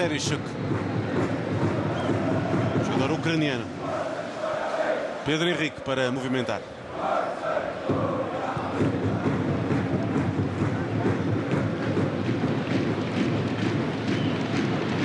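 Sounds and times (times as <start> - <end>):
crowd chanting: 0.6 - 12.7.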